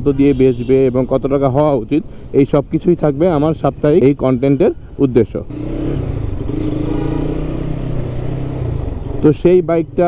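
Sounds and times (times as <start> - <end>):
motorcycle engine running: 5.5 - 9.3.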